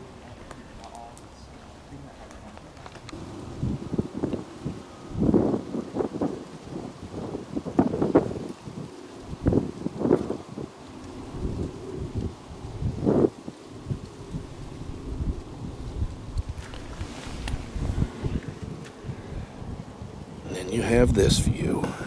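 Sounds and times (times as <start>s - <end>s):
wind buffeting microphone: 1.8s - 22.0s.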